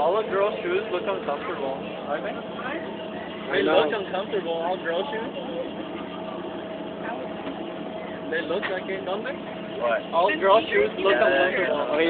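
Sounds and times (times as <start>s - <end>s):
ride machinery humming: 0.0s - 12.0s
thin mechanical whine: 0.0s - 12.0s.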